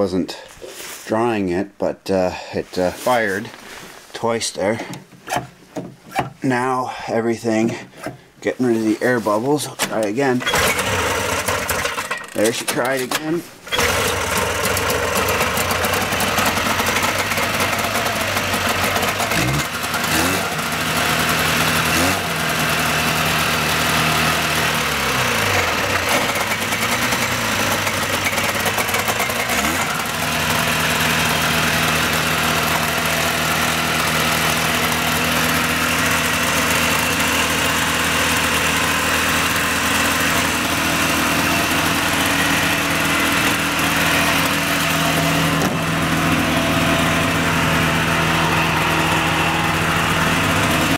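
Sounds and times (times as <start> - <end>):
snowmobile engine running: 10.0 - 12.9, 13.7 - 50.9.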